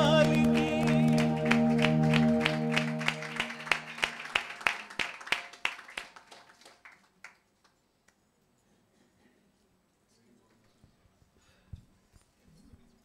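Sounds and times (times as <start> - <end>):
held final music chord: 0.0 - 4.6
rhythmic clapping: 0.0 - 7.4.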